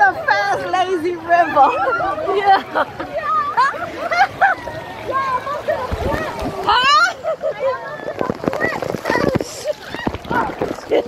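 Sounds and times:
rushing splashing water: 0:00.0 - 0:11.0.

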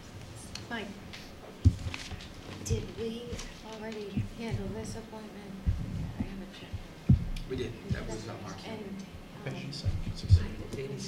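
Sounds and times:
steady low hum: 0:00.0 - 0:11.0
soft low knocks: 0:02.7 - 0:08.2, 0:09.8 - 0:10.9.

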